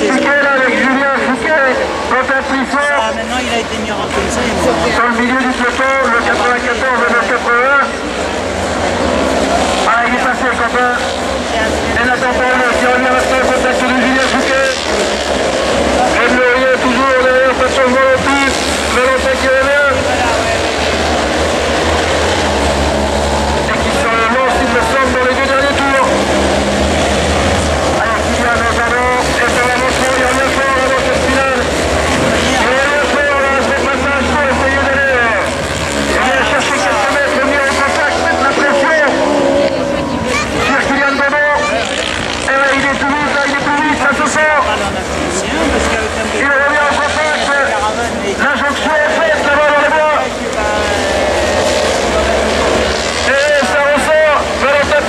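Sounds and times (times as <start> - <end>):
person talking: 0.0 - 7.9, 27.2 - 55.0
race car engines revving: 0.0 - 55.0.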